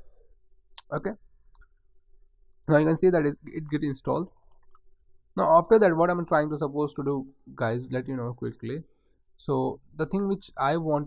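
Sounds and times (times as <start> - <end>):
computer mouse clicks: 4.4 - 4.9.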